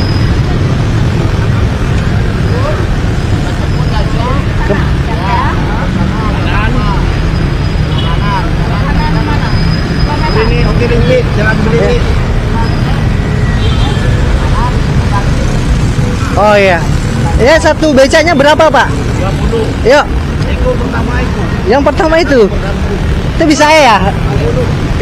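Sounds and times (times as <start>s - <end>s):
traffic rumble: 0.0s - 25.0s
men talking: 1.2s - 12.6s, 14.1s - 25.0s.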